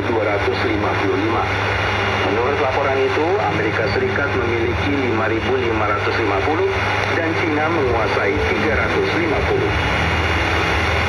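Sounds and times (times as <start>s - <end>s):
newsreader voice over radio: 0.0s - 9.8s
low hum: 0.0s - 11.0s
shortwave static hiss: 0.0s - 11.0s.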